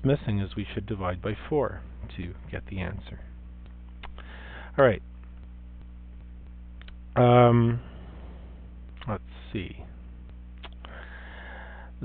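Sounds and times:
low electrical hum: 0.0s - 12.0s
faint clicks: 3.6s - 4.3s, 5.2s - 7.1s, 10.2s - 11.1s.

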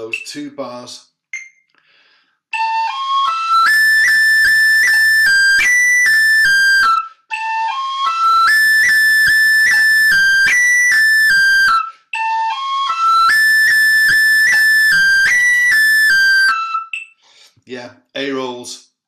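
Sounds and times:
tin whistle playing a jig: 2.5s - 17.2s.

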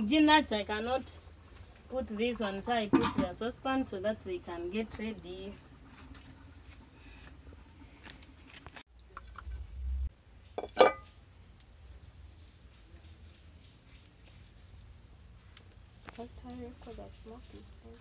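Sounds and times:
low rumble: 9.3s - 10.2s
metal pot knock with ringing: 10.6s - 11.1s.

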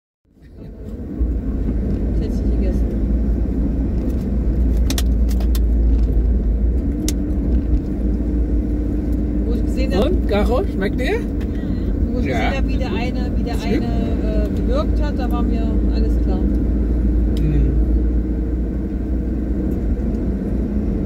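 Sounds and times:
car engine and tyres drone: 0.3s - 21.0s.

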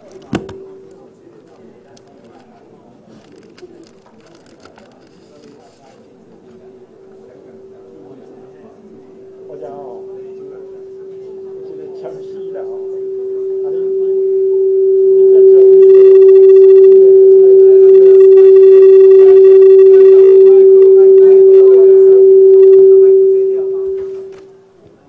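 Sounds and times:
microphone feedback tone: 0.0s - 1.7s, 3.2s - 24.6s.

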